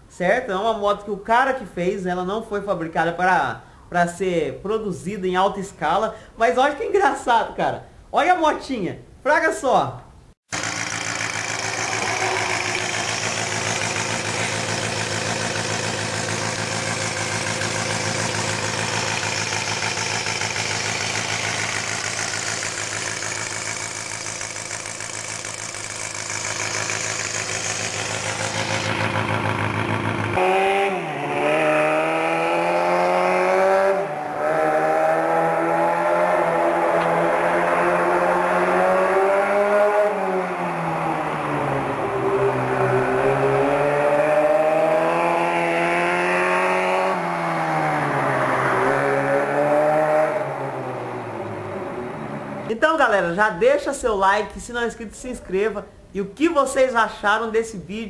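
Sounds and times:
motorcycle engine idling fast: 10.5s - 30.4s
motorcycle engine revving: 10.5s - 52.7s.

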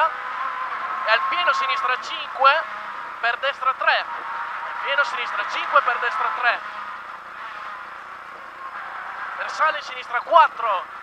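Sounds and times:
muffled car engine running: 0.0s - 11.0s
road and tyre noise: 0.0s - 11.0s.

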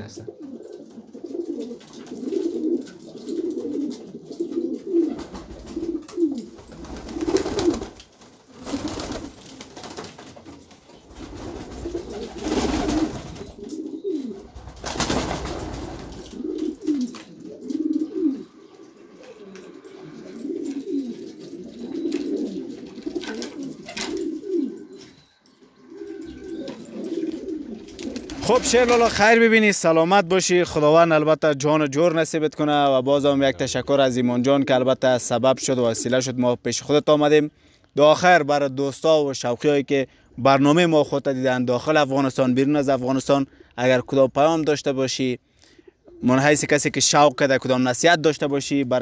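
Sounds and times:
pigeons cooing: 0.0s - 29.1s, 45.5s - 46.7s.

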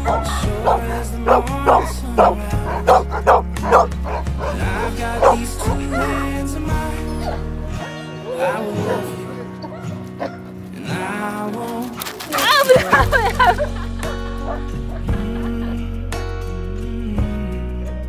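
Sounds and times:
dogs barking: 0.0s - 15.6s
background pop music: 0.0s - 18.0s.

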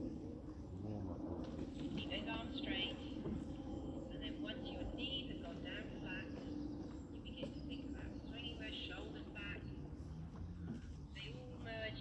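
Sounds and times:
faint indistinct voices: 0.0s - 12.0s
low steady hum: 0.0s - 12.0s
small birds warbling: 0.0s - 12.0s.

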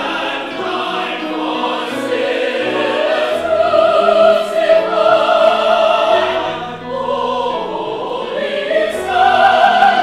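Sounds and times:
mixed choir singing in parts: 0.0s - 10.0s.

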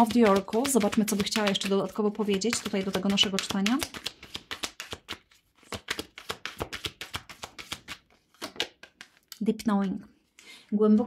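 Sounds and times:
cards being shuffled: 0.0s - 9.3s.

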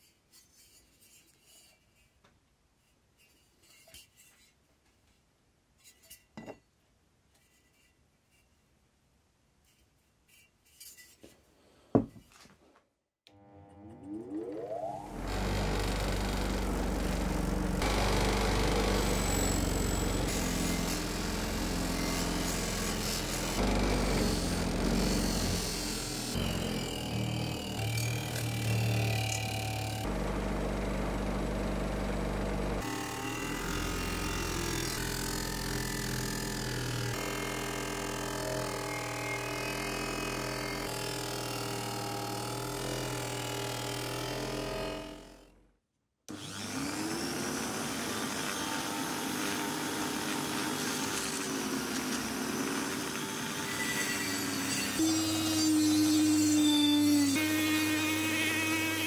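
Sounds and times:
buffing wheel motor running: 13.3s - 45.4s, 46.3s - 55.0s
rotary tool whine: 13.3s - 45.6s, 46.3s - 59.0s.

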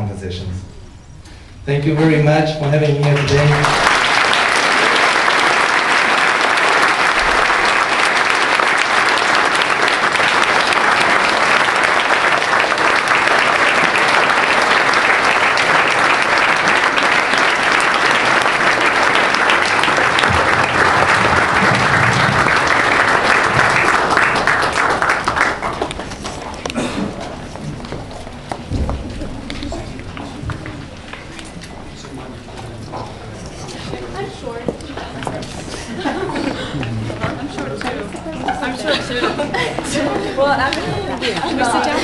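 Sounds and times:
audience applauding: 2.9s - 27.8s.

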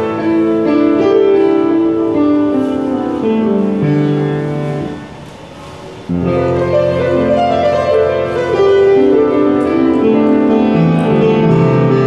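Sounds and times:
slow piano music: 0.0s - 12.0s.

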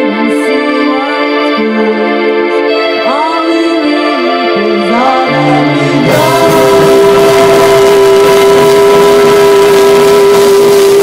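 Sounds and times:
rock band playing live: 5.0s - 11.0s
long held note: 5.6s - 11.0s.

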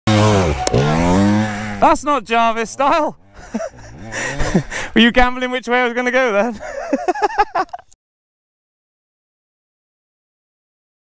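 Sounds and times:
dirt bike engine revving: 0.1s - 5.0s.

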